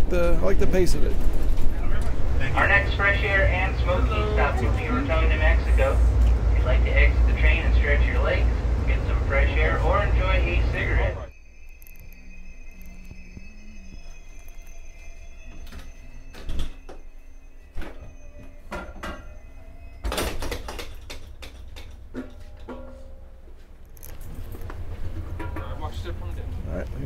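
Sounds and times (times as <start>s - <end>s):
train car rumble: 0.0s - 27.0s.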